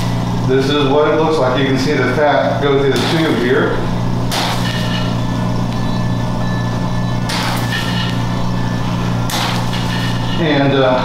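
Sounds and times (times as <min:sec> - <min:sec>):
suction pump humming: 0:00.0 - 0:11.0.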